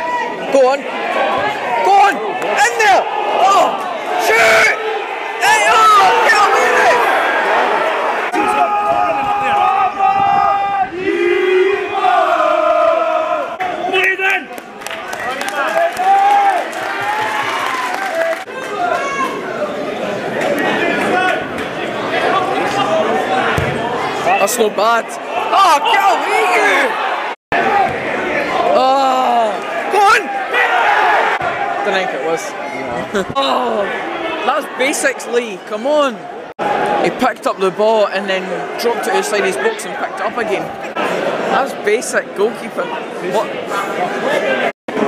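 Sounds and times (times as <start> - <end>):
crowd shouting and chanting: 0.0 - 45.0.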